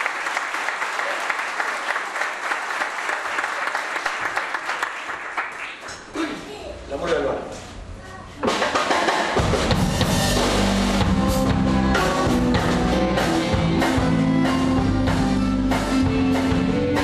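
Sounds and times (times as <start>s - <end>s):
drum kit: 8.4s - 17.0s
acoustic and electric guitars: 9.4s - 17.0s
bass low end: 9.4s - 17.0s.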